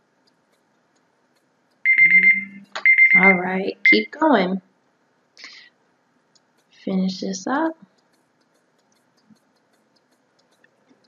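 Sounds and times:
electronic timer alarm beeping: 1.8 - 4.2.

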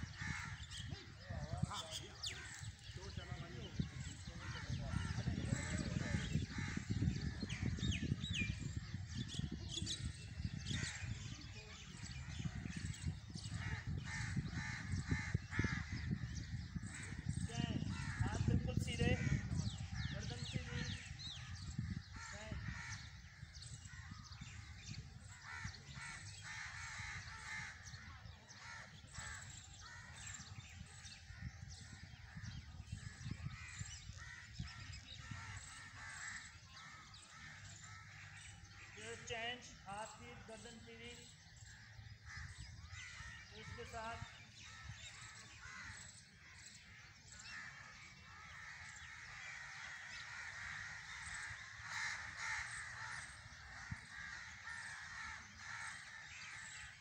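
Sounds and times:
crows cawing: 0.0 - 1.0, 13.3 - 18.5, 21.0 - 32.6, 33.2 - 39.1, 41.4 - 57.0
small birds chirping: 0.0 - 57.0.

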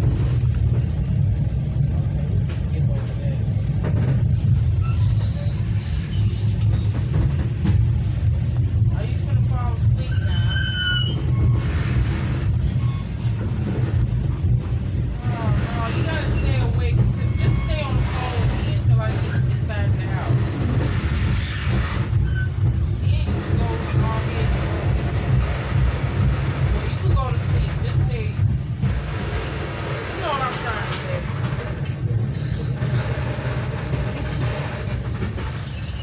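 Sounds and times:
passengers talking: 0.0 - 36.0
train car rumbling in motion: 0.0 - 36.0.

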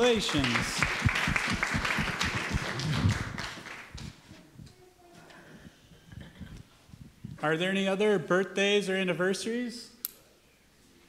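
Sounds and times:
congregation applauding: 0.0 - 4.2.

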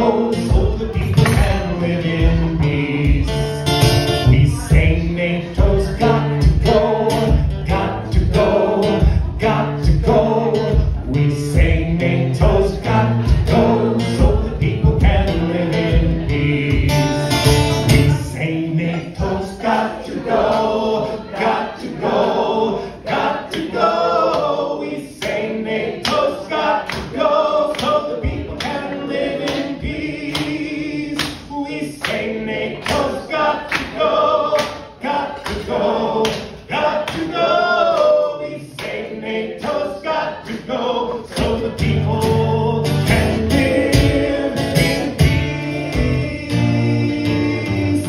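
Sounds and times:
acoustic guitar strumming: 0.0 - 21.4, 41.3 - 48.0
group of voices singing: 0.0 - 48.0
hand claps: 1.1 - 1.6, 23.5 - 23.7, 24.3 - 24.6, 25.2 - 25.4, 26.0 - 39.8.

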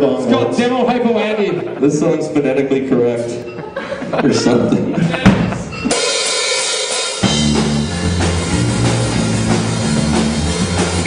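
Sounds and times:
drum kit cymbals: 5.2 - 11.0
bass and electric guitars: 7.2 - 11.0.

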